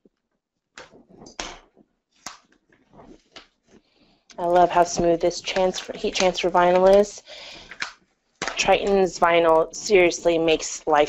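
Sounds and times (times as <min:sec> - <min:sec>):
vinyl sheet rustling and crinkling: 0:00.8 - 0:11.0.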